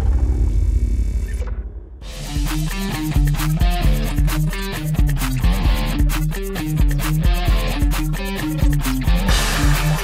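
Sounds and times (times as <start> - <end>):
boom with deep rumble: 0.0 - 2.0.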